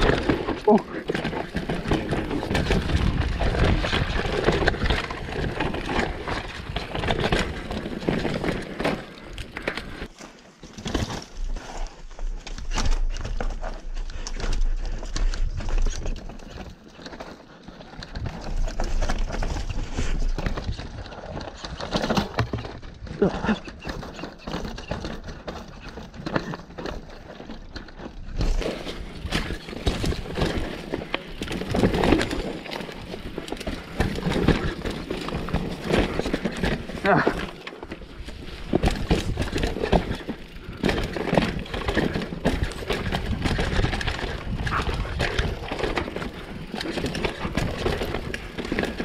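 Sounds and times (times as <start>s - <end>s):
bike rattling over rocks: 0.0s - 49.0s.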